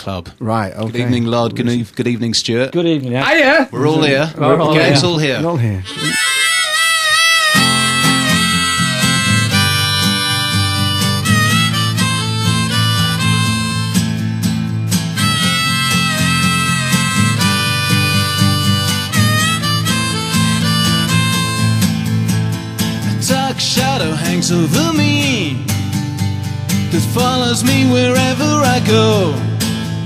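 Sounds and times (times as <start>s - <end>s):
guitar accompaniment: 3.2s - 30.0s
harmonica melody: 5.8s - 30.0s.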